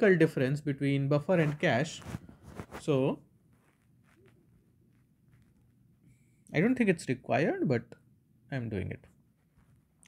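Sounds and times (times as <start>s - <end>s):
person speaking: 0.0s - 3.3s
stylus scratching on tablet screen: 1.3s - 5.8s.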